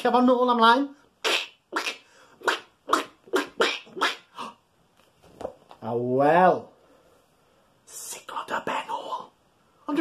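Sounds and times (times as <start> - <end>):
man making animal-like noises: 1.2 - 4.6
man talking: 5.8 - 6.7.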